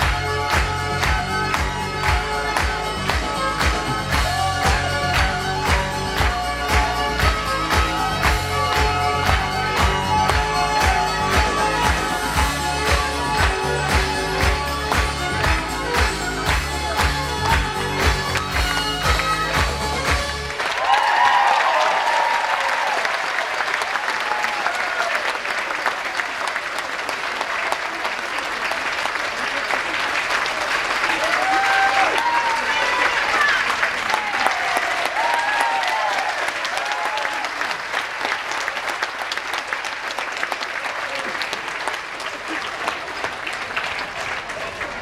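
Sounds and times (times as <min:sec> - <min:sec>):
dance music: 0:00.0 - 0:20.6
audience applauding: 0:00.0 - 0:45.0.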